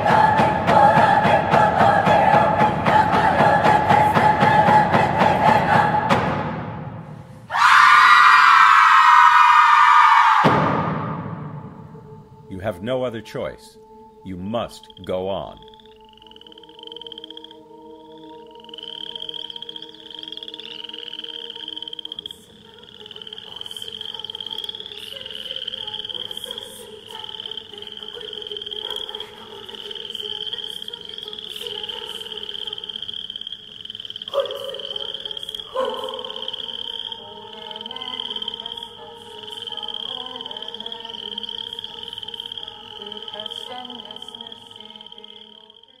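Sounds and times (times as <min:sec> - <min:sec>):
frog-like croaking chirps: 0:11.8 - 0:46.0.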